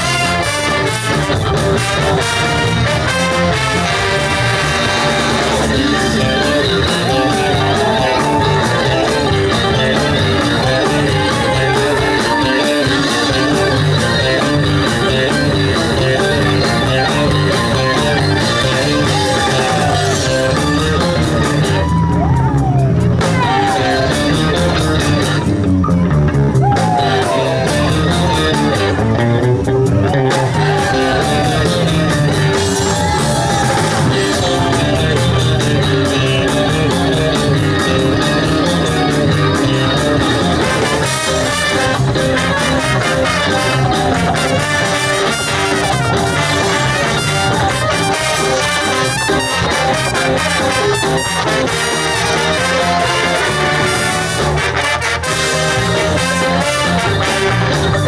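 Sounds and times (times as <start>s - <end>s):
saxophone and trumpet: 0.0s - 22.1s, 39.4s - 58.0s
bass: 0.0s - 58.0s
drums: 0.0s - 58.0s
electric guitar: 0.0s - 58.0s
lead line with pitch bends: 0.0s - 58.0s.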